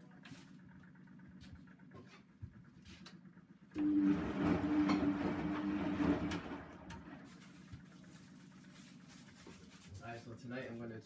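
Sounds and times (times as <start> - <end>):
washing machine motor humming: 0.0 - 11.0.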